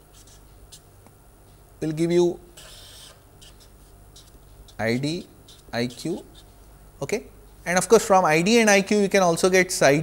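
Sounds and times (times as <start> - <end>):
marker scratching on paper: 0.0 - 0.9, 2.6 - 6.6.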